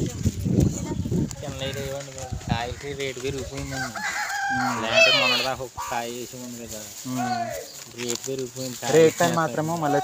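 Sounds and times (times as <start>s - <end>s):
people talking: 0.0s - 10.0s
rooster crowing: 3.7s - 5.5s.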